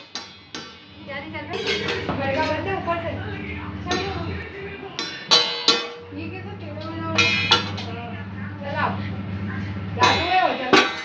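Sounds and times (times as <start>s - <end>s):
metal pot and lid clanking: 1.5s - 2.5s, 5.0s - 6.0s, 7.0s - 7.9s, 10.0s - 11.0s.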